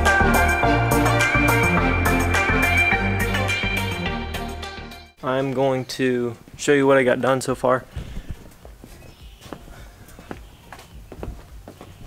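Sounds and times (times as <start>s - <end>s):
footsteps walking: 7.9s - 12.0s.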